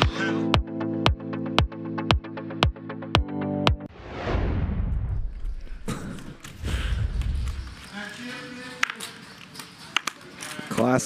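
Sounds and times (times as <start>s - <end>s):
whoosh sweeping down: 3.9s - 7.7s
low rumble: 3.9s - 7.9s.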